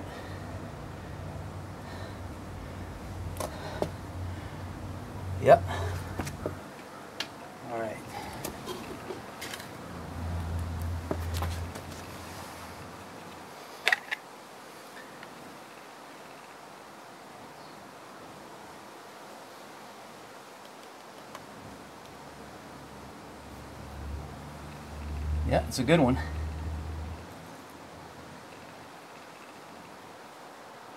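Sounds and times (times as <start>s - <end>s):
quiet steady hiss: 0.0s - 30.9s.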